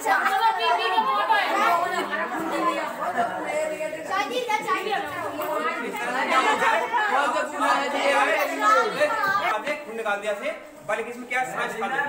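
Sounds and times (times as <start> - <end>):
classroom chatter: 0.0 - 12.0.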